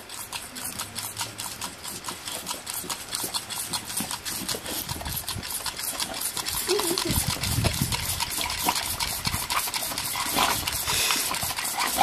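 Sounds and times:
hose spray hissing: 3.5 - 12.0.

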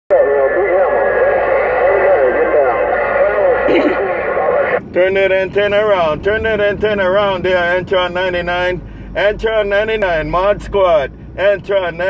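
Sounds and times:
garbled voice over radio speaker: 0.1 - 8.4.

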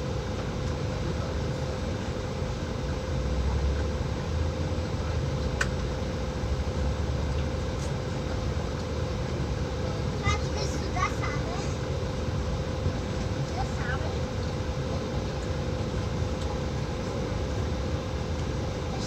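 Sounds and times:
constant hum: 0.0 - 19.0.

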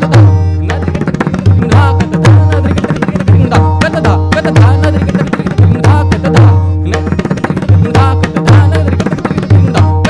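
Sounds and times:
harmonium melody: 0.0 - 10.0.

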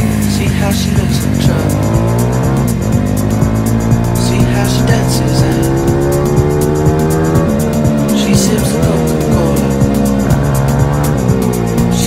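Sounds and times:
motorbike engine: 0.0 - 12.0
music with steady beat: 0.0 - 12.0.

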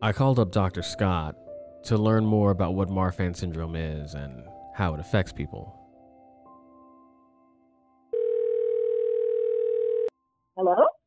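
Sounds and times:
telephone ringback tone: 8.1 - 10.1.

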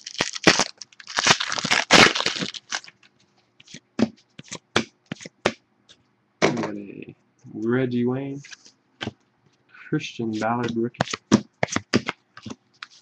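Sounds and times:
foil wrapper tearing and crinkling: 0.0 - 3.0.

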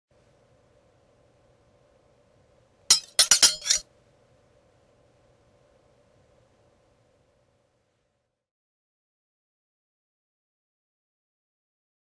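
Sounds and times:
sharp ringing clinks: 2.9 - 3.8.

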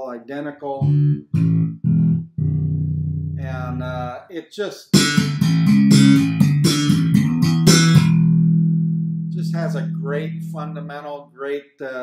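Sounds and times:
electric bass notes: 0.7 - 4.2, 4.9 - 11.3.

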